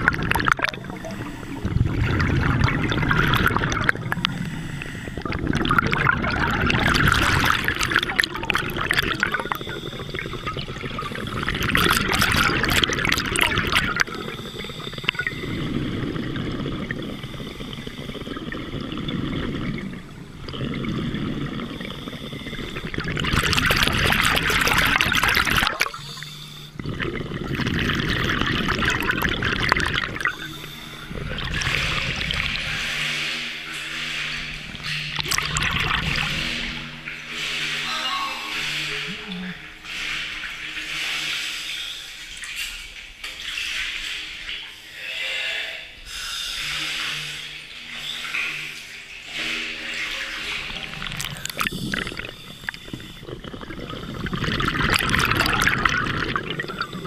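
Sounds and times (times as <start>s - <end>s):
diver breathing through regulator: 0.7s - 5.7s, 8.6s - 36.3s, 44.8s - 48.8s, 51.3s - 55.4s.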